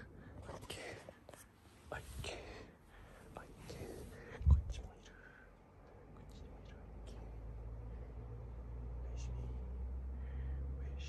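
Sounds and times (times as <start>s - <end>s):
soft whispering: 0.0s - 11.0s.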